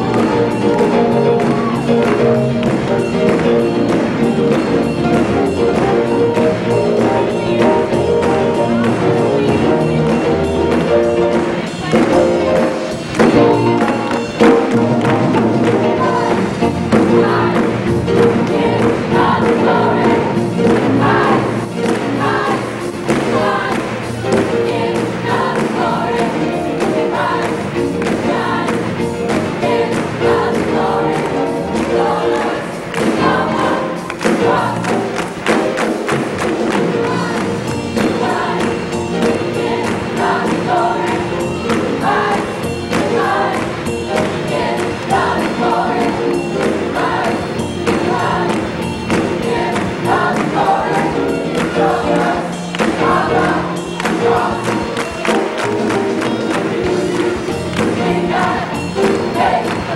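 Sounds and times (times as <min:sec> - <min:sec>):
drums steady beat: 0:00.0 - 0:59.9
gospel choir with band: 0:00.0 - 0:59.9.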